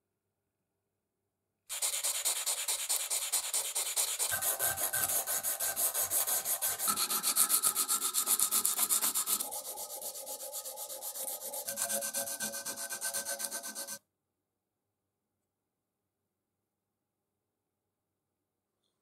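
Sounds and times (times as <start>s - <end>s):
sandpaper rubbing on steel: 1.7s - 14.0s.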